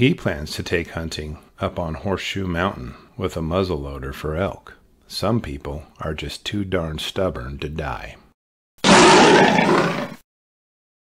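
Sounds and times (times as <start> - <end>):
bear roar: 8.8 - 10.2.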